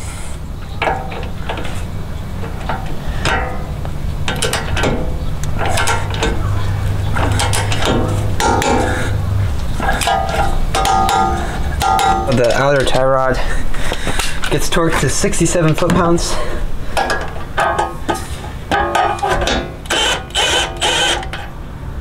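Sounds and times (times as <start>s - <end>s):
ratchet wrench clicking: 19.9s - 21.5s.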